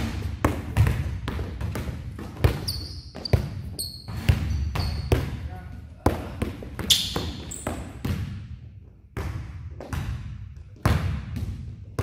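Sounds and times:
basketballs bouncing on gym floor: 0.0 - 12.0
sneakers squeaking on court: 0.6 - 5.5, 6.2 - 8.3.

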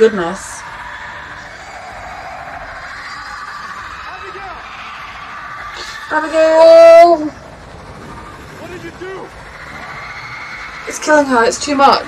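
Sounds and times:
steady soundtrack drone: 0.0 - 12.0.

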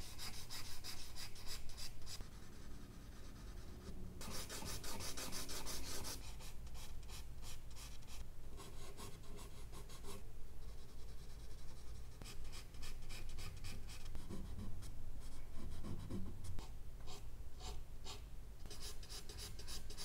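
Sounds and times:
charcoal scratching on paper: 3.2 - 7.2.

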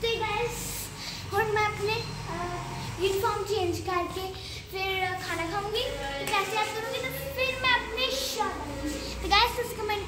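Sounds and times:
girl singing: 0.0 - 10.0.

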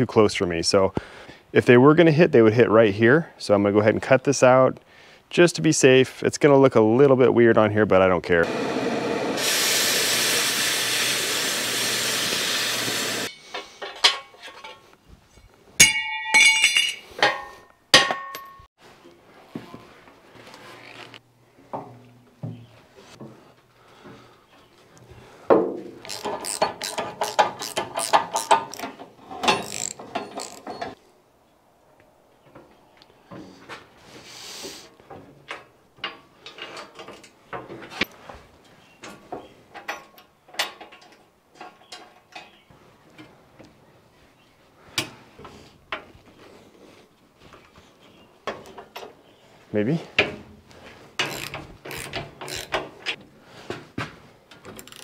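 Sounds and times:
cutting torch hissing: 8.4 - 13.3
steel plate clinking: 15.8 - 18.7
rapid ratchet clicking: 26.1 - 28.8, 51.2 - 52.8.

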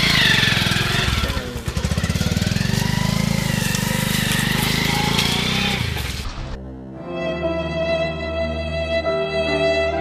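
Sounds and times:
motorcycle engine pulling away: 0.0 - 6.6.

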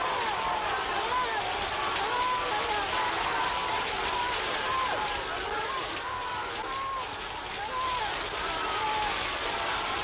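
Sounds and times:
swimmers splashing through water: 0.0 - 10.0
voices shouting: 0.0 - 10.0.

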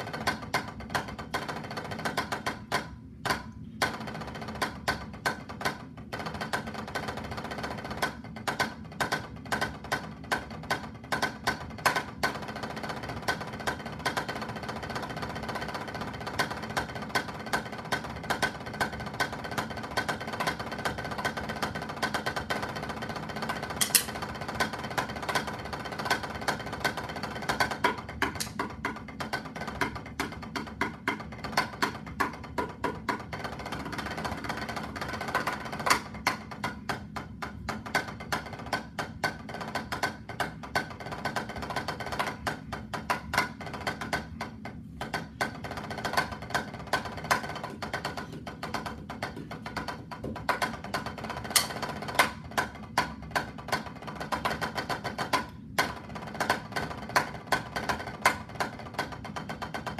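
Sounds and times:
drumsticks on practice pad: 0.0 - 59.7.

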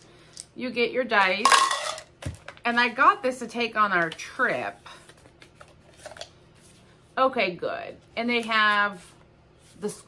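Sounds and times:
faint paper rustling: 4.8 - 7.2, 8.2 - 10.0.

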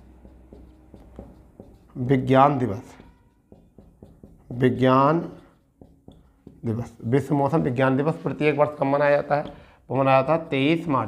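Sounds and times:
marker pen scratching on whiteboard: 0.0 - 9.6.

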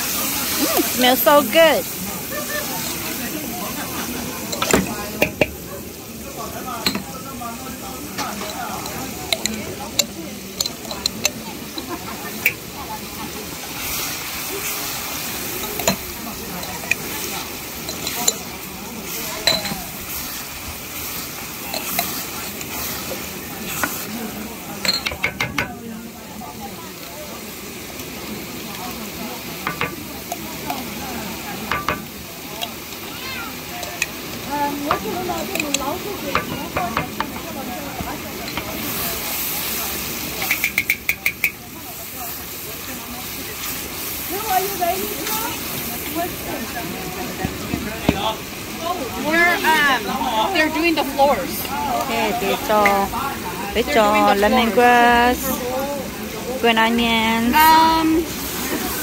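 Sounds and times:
sauce sizzling in hot oil: 0.0 - 59.0
utensils clicking against pan: 4.5 - 5.6, 8.1 - 12.7, 15.5 - 18.6, 19.4 - 24.1, 24.8 - 25.8, 29.6 - 30.9, 34.8 - 37.6, 38.4 - 38.9, 40.3 - 41.6
wooden spatula scraping a wok: 17.0 - 24.4.

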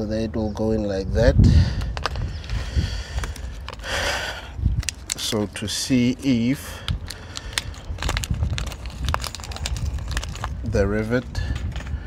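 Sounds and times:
wind rumble on microphone: 0.6 - 12.0.

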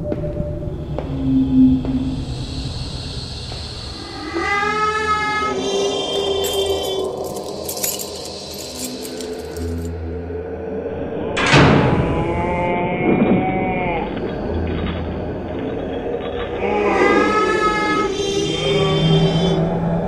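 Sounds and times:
low drone: 0.0 - 20.0
moaning pitched tone: 0.0 - 20.0.

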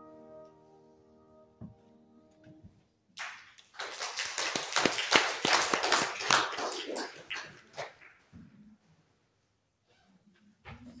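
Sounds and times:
congregation applauding: 3.2 - 8.3.

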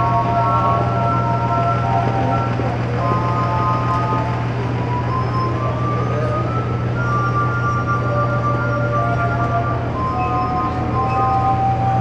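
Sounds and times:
glass harp ringing notes: 4.9 - 12.0.

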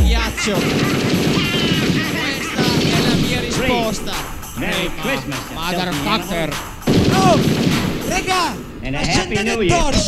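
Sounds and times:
chopped vocal stabs: 0.0 - 8.8
hardcore techno track: 0.0 - 9.5
sampled noise blast: 0.4 - 9.0.

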